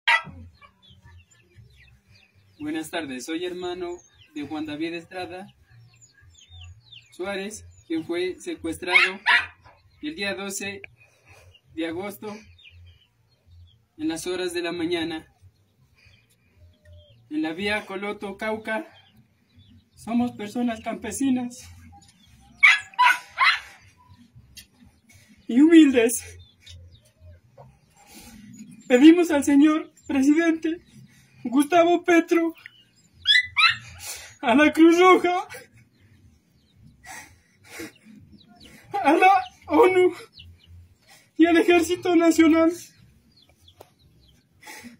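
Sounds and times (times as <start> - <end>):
dog barking: 0.0 - 0.7, 8.9 - 9.8, 22.6 - 23.8, 33.2 - 33.9.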